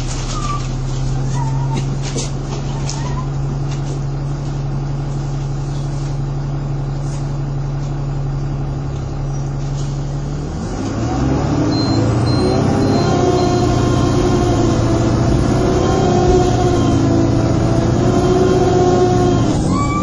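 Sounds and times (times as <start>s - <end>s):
bus diesel engine idling: 0.0s - 10.6s, 11.8s - 20.0s.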